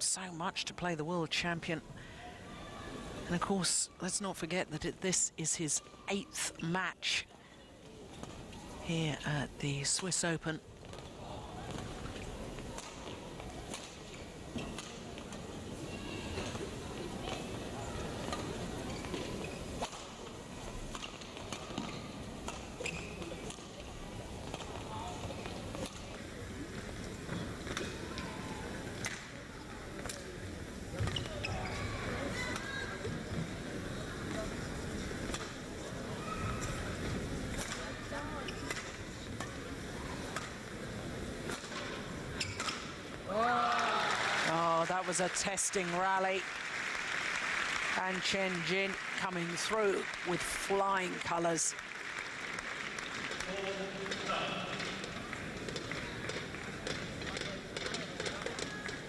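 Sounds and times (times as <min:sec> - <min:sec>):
crowd cheering noise: 0:43.3 - 0:57.2.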